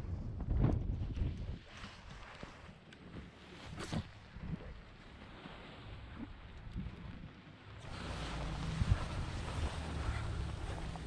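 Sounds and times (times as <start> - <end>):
wind buffeting microphone: 0.0 - 2.3, 6.0 - 11.0.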